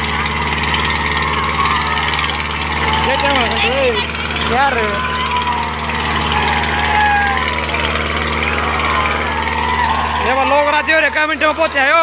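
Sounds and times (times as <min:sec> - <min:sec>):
crowd voices and shouts: 0:00.0 - 0:12.0
tractor diesel engine under load: 0:00.0 - 0:12.0.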